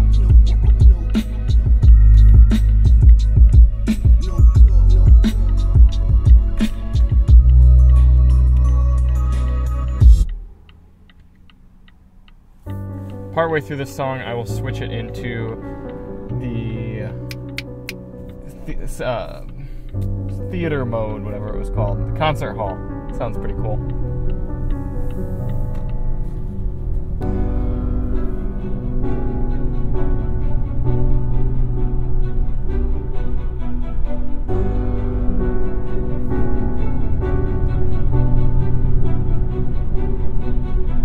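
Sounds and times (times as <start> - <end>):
bass-heavy lo-fi music: 0.0 - 10.8, 12.6 - 41.0
classical music: 12.7 - 41.0.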